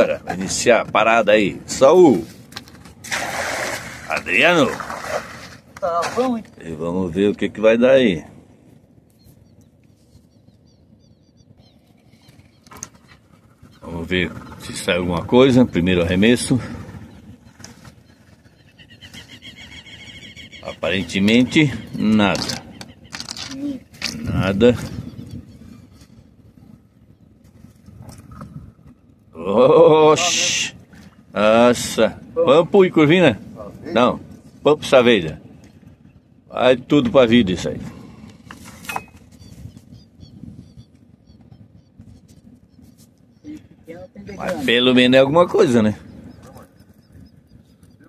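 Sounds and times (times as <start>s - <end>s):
wind rumble on microphone: 0.0s - 48.0s
bird trilling: 17.0s - 23.9s, 38.9s - 48.0s.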